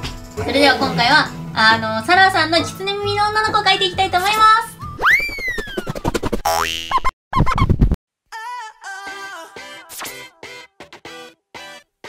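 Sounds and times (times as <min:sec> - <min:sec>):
cartoon boing effects: 0:06.4 - 0:07.1.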